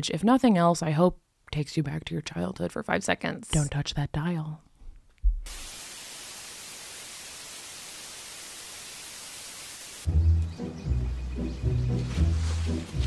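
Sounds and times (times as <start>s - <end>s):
tv static hiss: 5.4s - 10.1s
low sustained music: 10.1s - 13.0s.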